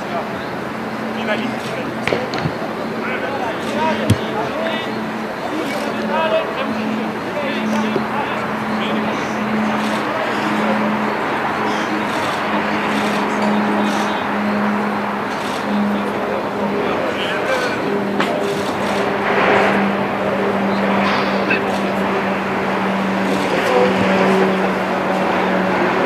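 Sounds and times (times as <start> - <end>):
low engine-like hum: 0.0 - 26.0
outdoor noise haze: 0.0 - 26.0.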